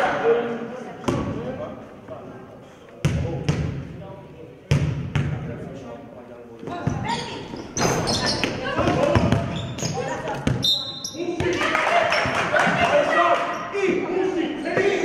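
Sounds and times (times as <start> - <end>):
voices in a hall: 0.0 - 15.0
shoe squeaks: 6.8 - 11.4
basketball bouncing on wooden floor: 7.8 - 10.6.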